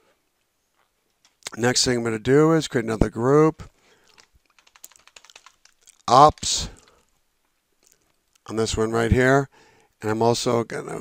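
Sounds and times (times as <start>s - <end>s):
keyboard typing: 4.0s - 7.1s.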